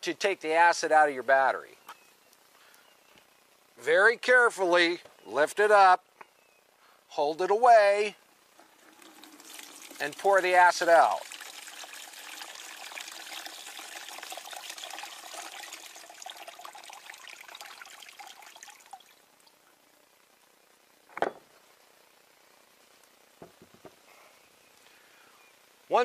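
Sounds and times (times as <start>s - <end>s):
liquid splashing into plastic tub: 8.6s - 19.2s.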